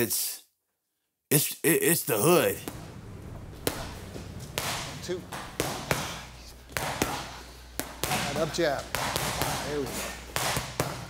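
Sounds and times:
low steady hum: 0:01.7 - 0:11.0
punches smacking focus mitts: 0:03.6 - 0:11.0.

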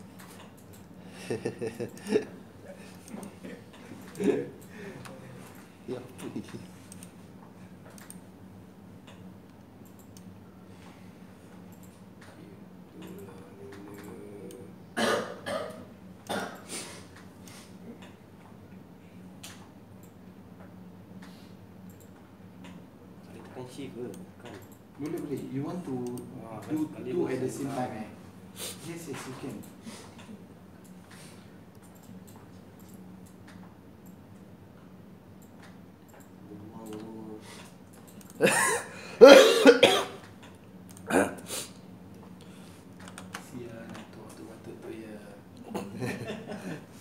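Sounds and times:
computer mouse and key clicks: 0:00.2 - 0:01.0, 0:02.9 - 0:05.2, 0:06.2 - 0:08.3, 0:09.0 - 0:10.4, 0:11.5 - 0:14.6, 0:19.4 - 0:22.8, 0:23.4 - 0:27.0, 0:29.4 - 0:34.5, 0:35.4 - 0:38.4, 0:40.2 - 0:41.1, 0:42.1 - 0:44.4
person coughing: 0:15.0 - 0:16.7, 0:38.4 - 0:40.2.

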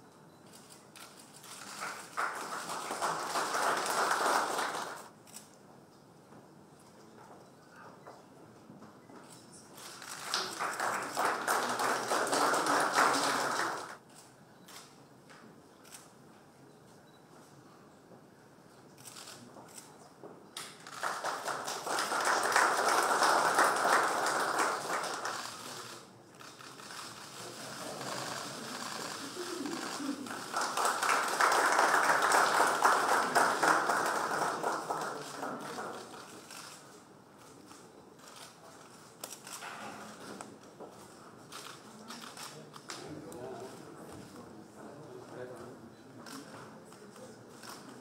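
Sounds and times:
audience applauding: 0:01.6 - 0:05.1, 0:10.0 - 0:14.0, 0:20.8 - 0:26.1, 0:28.0 - 0:36.6
scattered claps and clicks: 0:20.6 - 0:27.0.

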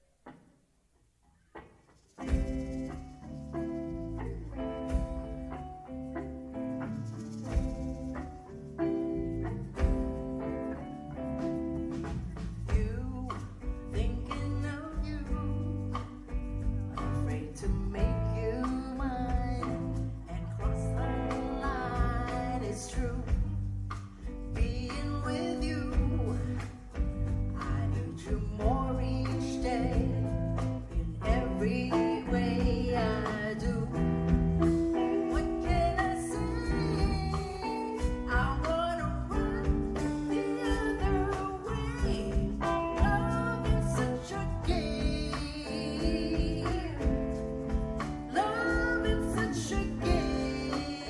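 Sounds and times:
rock band playing a ballad: 0:02.2 - 0:51.0
woman singing: 0:08.8 - 0:51.0.

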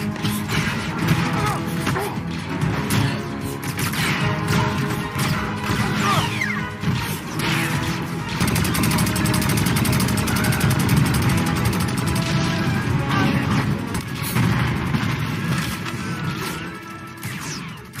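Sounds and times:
film music: 0:00.0 - 0:18.0
blaster fire: 0:02.6 - 0:18.0.

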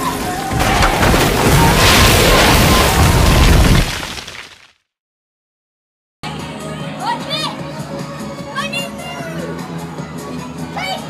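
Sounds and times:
loud fairground music: 0:06.2 - 0:11.0.

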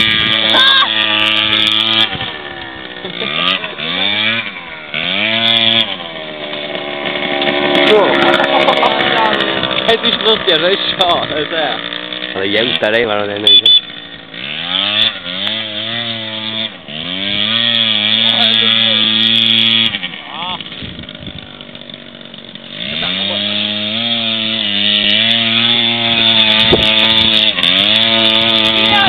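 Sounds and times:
scooter engine revving: 0:00.0 - 0:29.0.

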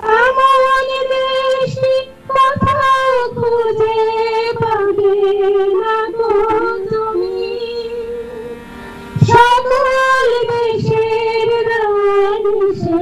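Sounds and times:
woman singing with vibrato: 0:00.0 - 0:08.6, 0:09.2 - 0:13.0.

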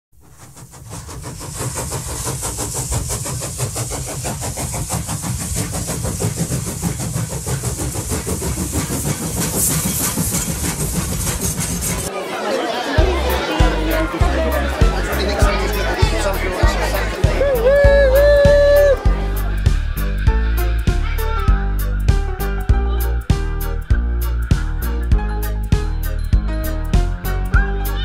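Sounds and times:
steam locomotive chuffing: 0:00.2 - 0:12.1, 0:13.0 - 0:27.5
people talking: 0:11.9 - 0:19.6.

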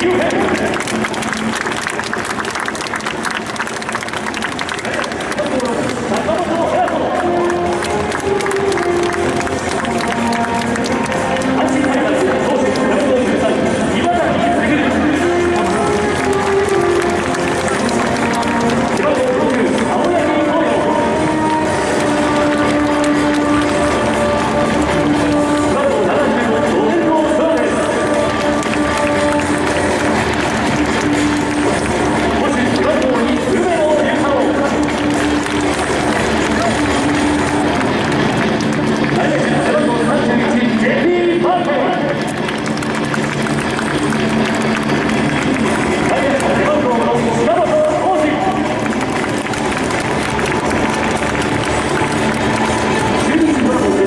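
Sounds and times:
large crowd noise: 0:00.0 - 0:54.0
stadium music over loudspeakers: 0:00.0 - 0:54.0.

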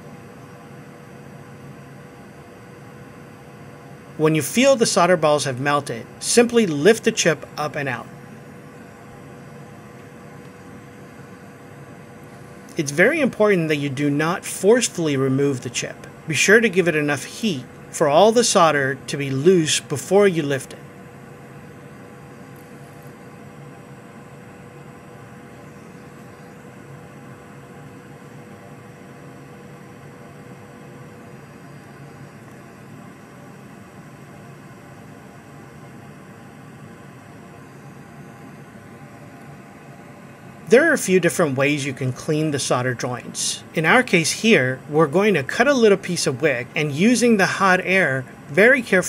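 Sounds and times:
faint hum: 0:00.0 - 0:49.0
fan blowing air: 0:00.0 - 0:49.0
man talking: 0:04.2 - 0:08.1, 0:12.7 - 0:20.8, 0:40.7 - 0:49.0
low hiss: 0:11.2 - 0:20.7, 0:40.4 - 0:49.0.

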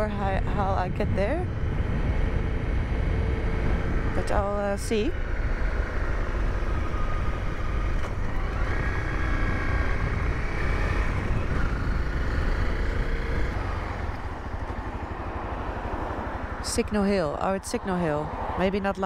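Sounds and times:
motorcycle engine running: 0:00.0 - 0:19.0
wind rumble on microphone: 0:00.0 - 0:19.0.

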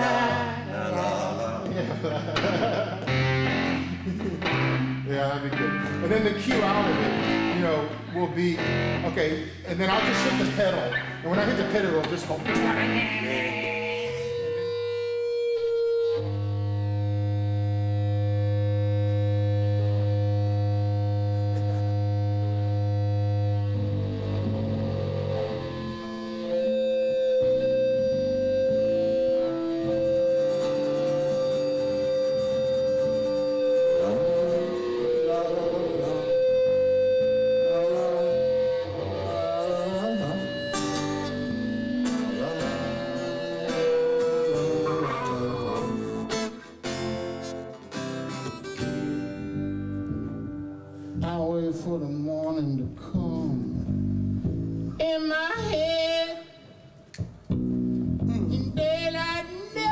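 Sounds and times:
instrumental guitar music: 0:00.0 - 0:59.9.

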